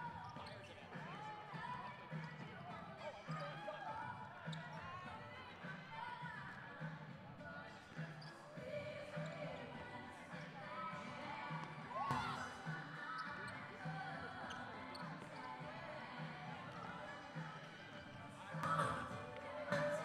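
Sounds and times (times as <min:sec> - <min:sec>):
faint music: 0:00.0 - 0:20.0
indistinct voices: 0:07.4 - 0:20.0.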